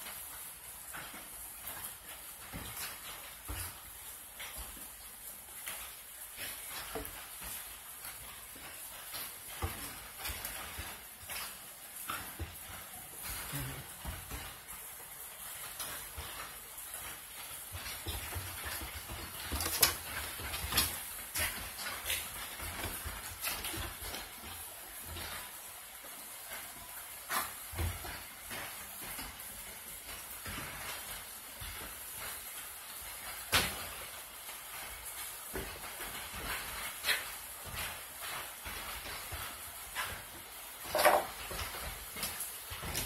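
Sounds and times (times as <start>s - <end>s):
paws and claws on wooden floor: 0.0s - 43.0s
rain hissing: 0.0s - 43.0s
dogs play-wrestling: 1.0s - 43.0s.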